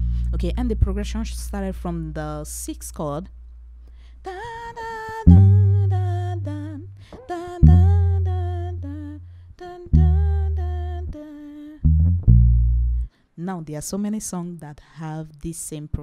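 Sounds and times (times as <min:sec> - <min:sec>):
electric bass notes: 0:00.0 - 0:03.8, 0:05.2 - 0:13.1
woman humming: 0:04.3 - 0:11.8.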